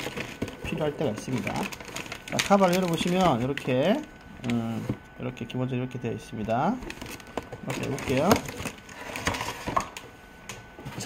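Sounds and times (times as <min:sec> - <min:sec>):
cardboard packing rustling: 0:00.0 - 0:05.1, 0:06.3 - 0:10.1.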